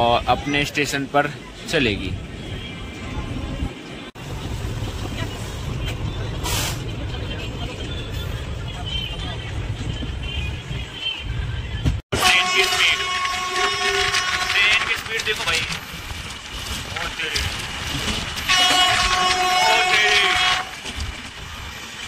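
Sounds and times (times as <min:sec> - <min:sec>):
train rumble: 0:00.0 - 0:22.0
short hiss: 0:06.4 - 0:06.9
rushing wind: 0:13.0 - 0:22.0.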